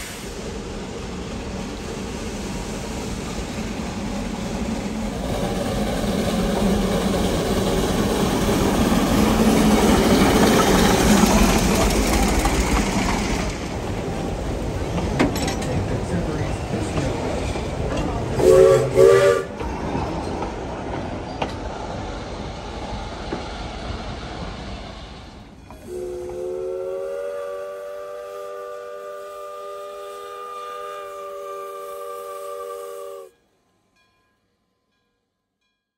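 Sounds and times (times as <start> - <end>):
train running on rails: 0.0 - 35.8
steam locomotive whistle: 18.4 - 19.6, 25.7 - 33.4.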